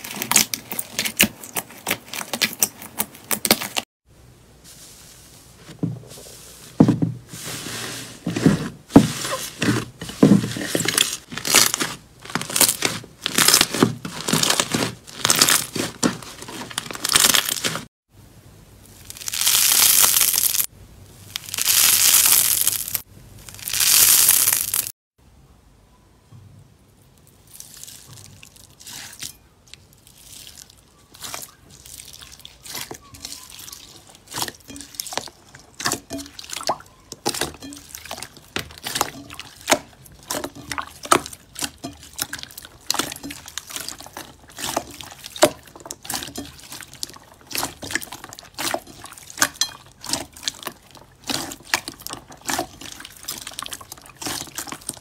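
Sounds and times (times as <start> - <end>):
crunchy slime crackling: 10.9 - 17.9, 19.0 - 20.7, 21.3 - 24.9, 27.5 - 55.0
slime squelching with pops: 34.2 - 55.0.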